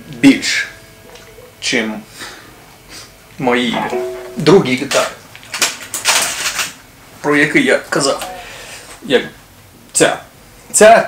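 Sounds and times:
guitar handling noise: 3.7s - 4.7s.

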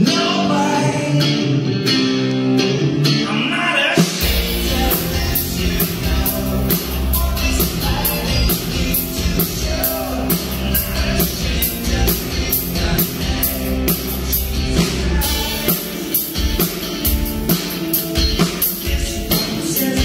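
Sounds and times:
man singing: 0.0s - 1.9s, 3.1s - 16.8s, 17.9s - 20.0s
bass guitar: 0.0s - 20.0s
electric guitar: 0.0s - 20.0s
drum kit beat: 4.0s - 20.0s.

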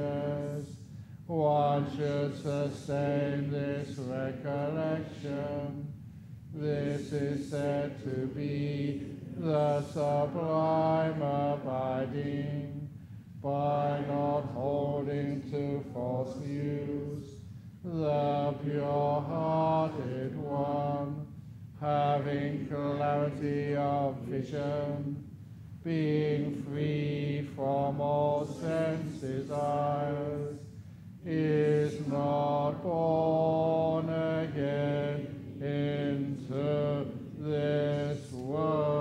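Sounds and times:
monk chanting solo: 0.0s - 5.9s, 6.6s - 39.0s.

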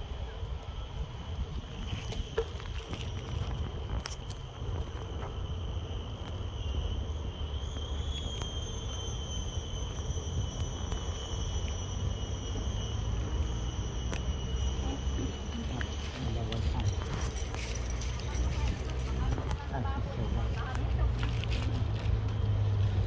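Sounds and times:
high-pitched insect drone: 0.0s - 23.0s
wind rumble on microphone: 0.0s - 23.0s.

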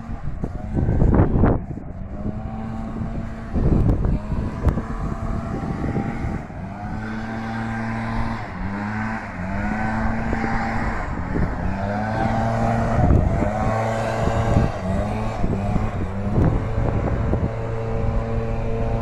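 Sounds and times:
lawn mower engine running: 0.0s - 19.0s
wind rumbling on microphone: 0.0s - 19.0s.

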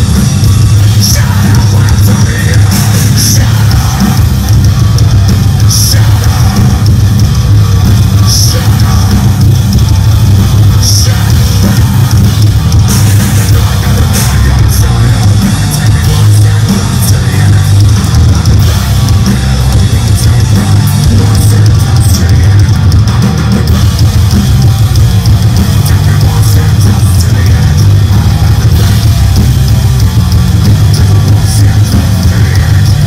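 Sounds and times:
band playing heavy rock: 0.0s - 33.0s.

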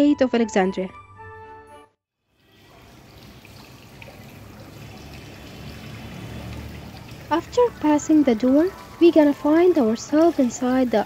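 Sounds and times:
fountain water trickling and splashing: 2.3s - 11.0s.

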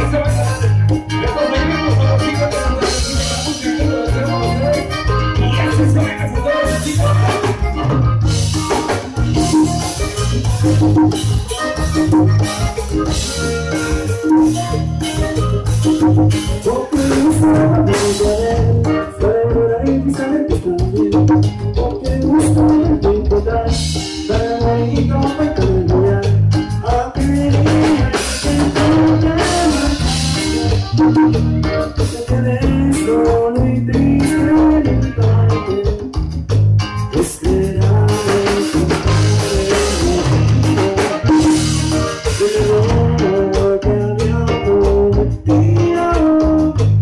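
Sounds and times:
live band playing: 0.0s - 47.0s.

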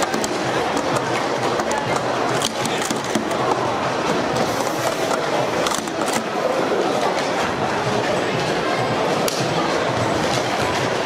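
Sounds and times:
plastic cups clattering: 0.0s - 6.6s.

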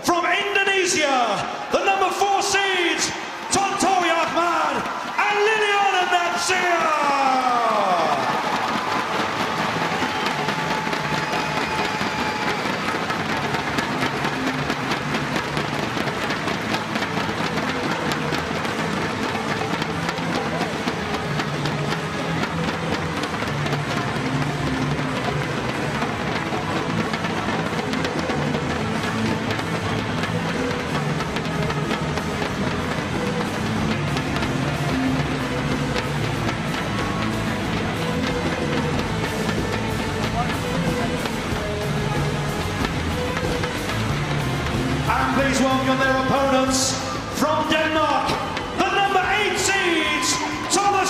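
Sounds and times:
crowd applauding and cheering: 0.0s - 51.0s
music with steady beat: 6.9s - 51.0s.

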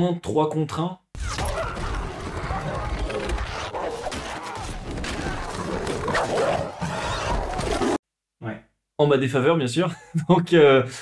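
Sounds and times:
horses in battle: 1.3s - 8.0s.

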